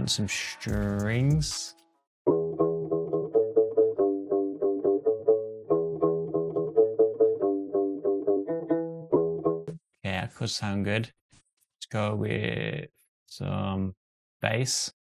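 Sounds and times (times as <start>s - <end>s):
strings loop: 0.0s - 9.8s.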